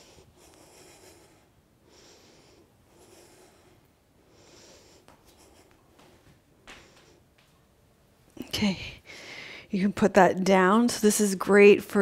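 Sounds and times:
woman breathing faintly: 0.0 - 7.4, 8.8 - 9.8.

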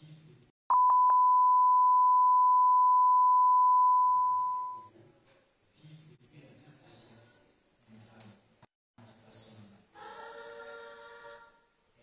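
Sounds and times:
electronic test tone: 0.7 - 4.9.

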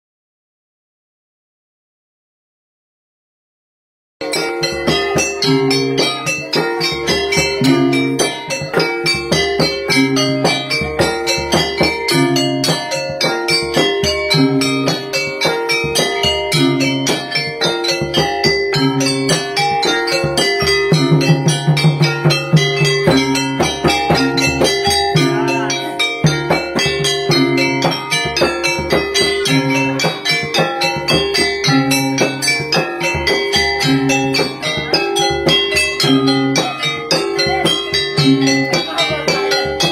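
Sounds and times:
bell-like struck notes: 4.2 - 39.9
steady beat: 4.2 - 39.9.

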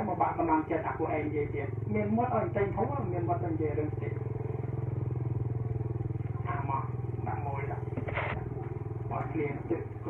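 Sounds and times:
small engine droning: 0.0 - 10.0.

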